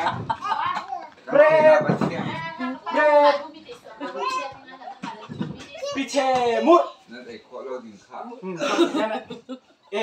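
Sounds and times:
small child's voice: 4.2s - 4.9s.

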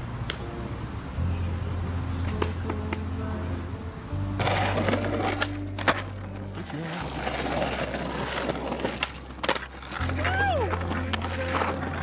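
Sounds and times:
music with held bass notes: 0.0s - 8.1s
skateboard clacking: 4.4s - 12.0s
skateboard wheels rolling: 4.4s - 12.0s.

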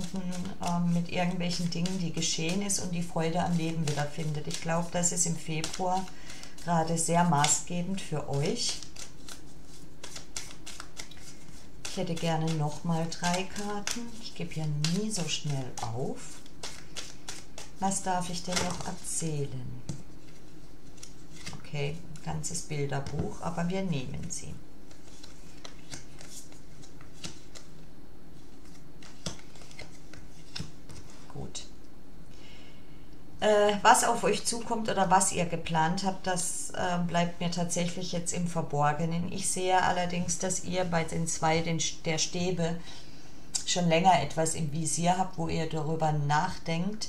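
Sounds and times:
cards shuffling: 0.0s - 19.2s, 19.8s - 21.7s, 24.8s - 27.8s, 28.4s - 31.3s.

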